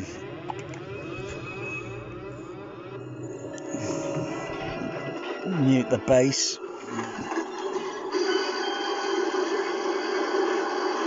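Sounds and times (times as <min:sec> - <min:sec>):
film soundtrack music: 0:00.0 - 0:10.2.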